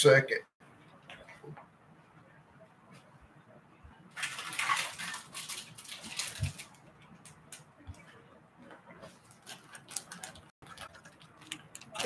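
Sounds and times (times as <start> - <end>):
plastic packaging rustling: 4.1 - 7.6, 9.0 - 12.0.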